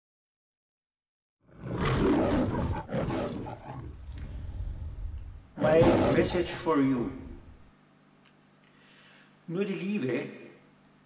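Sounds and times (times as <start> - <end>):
lion roaring: 1.5 - 7.6
low trailing rumble: 3.9 - 5.6.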